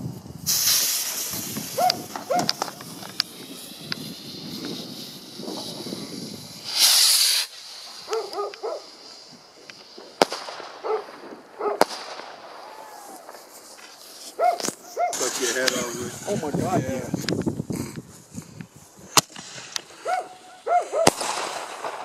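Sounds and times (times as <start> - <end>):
firework bursts popping: 0.0 - 22.0
rockets launching with hiss: 0.0 - 22.0
dog barking: 1.8 - 2.6, 8.1 - 8.8, 10.8 - 11.8, 14.4 - 15.2, 20.0 - 21.1.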